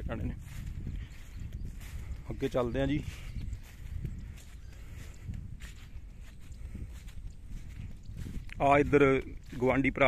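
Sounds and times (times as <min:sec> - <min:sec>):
footsteps in wet mud: 0:00.0 - 0:10.0
steady low rumble: 0:00.0 - 0:10.0.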